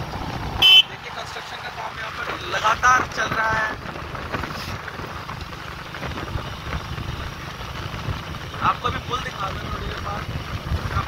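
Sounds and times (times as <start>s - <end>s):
vehicle engine droning: 0.0s - 11.0s.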